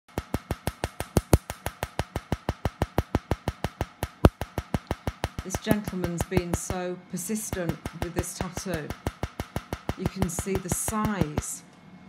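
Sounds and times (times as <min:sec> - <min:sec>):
laser firing sharp snaps: 0:00.1 - 0:11.6.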